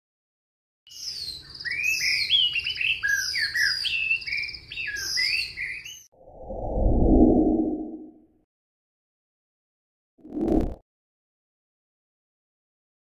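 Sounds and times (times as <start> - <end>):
birds chirping: 0.9 - 6.1.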